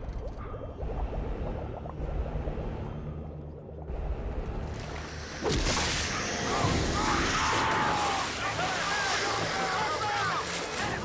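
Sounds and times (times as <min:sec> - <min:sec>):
low rumble: 0:00.0 - 0:08.2
churning water rushing: 0:04.2 - 0:11.0.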